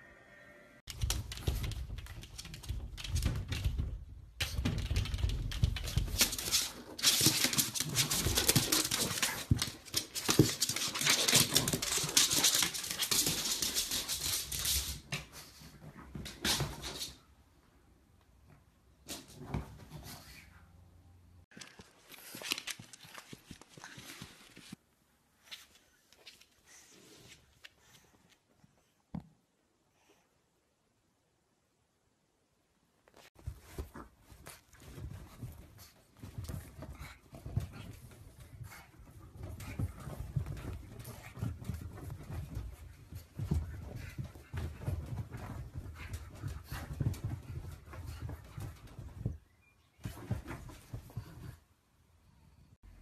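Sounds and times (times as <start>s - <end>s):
paws thumping on mattress: 33.4s - 49.4s, 50.0s - 51.6s.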